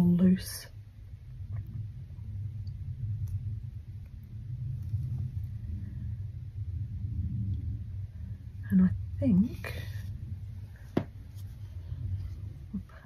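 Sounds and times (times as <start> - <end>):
low rumble: 0.0 - 13.0.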